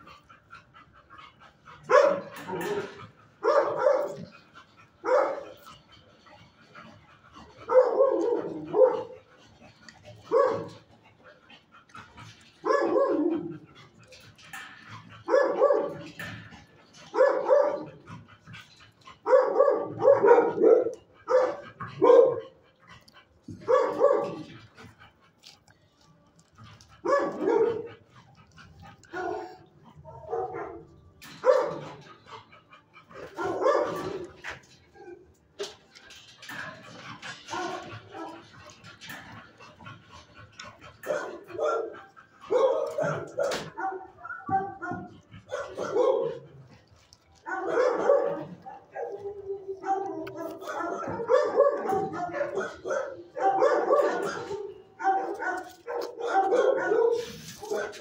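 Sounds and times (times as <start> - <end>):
dog barking: 1.9 - 4.3, 5.0 - 5.5, 7.7 - 9.2, 10.3 - 10.8, 12.6 - 13.5, 15.3 - 16.1, 17.1 - 18.0, 19.2 - 22.6, 23.6 - 24.5, 27.0 - 28.0, 29.1 - 30.8, 31.4 - 31.8, 33.2 - 34.2, 41.0 - 46.5, 47.4 - 58.0.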